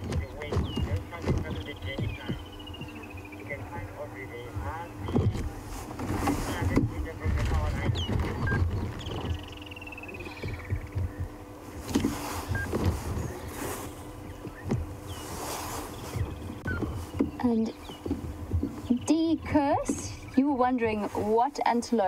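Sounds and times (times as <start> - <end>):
birds calling: 0.0 - 22.0
low rumble with gusts: 0.0 - 22.0
rapid whistled bird notes: 0.5 - 3.5, 7.8 - 11.3, 14.3 - 18.0.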